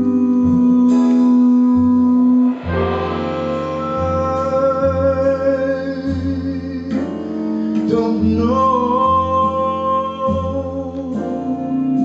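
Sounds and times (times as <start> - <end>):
double bass: 0.0 - 12.0
guitar: 0.0 - 12.0
man singing: 0.0 - 12.0
piano: 0.0 - 12.0.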